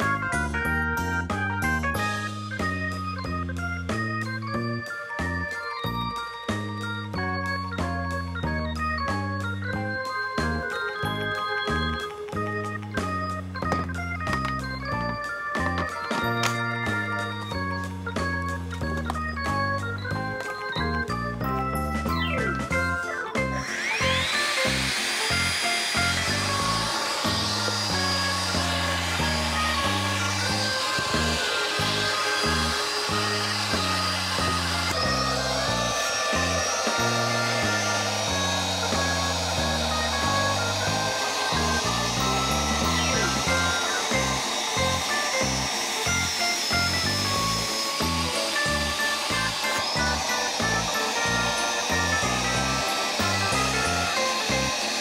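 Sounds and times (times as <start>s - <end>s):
background music with steady beat: 0.0s - 55.0s
stick vacuum motor whine: 0.0s - 55.0s.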